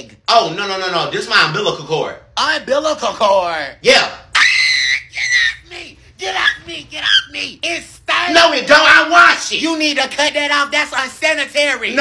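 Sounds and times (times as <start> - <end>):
person screaming: 4.3 - 7.3.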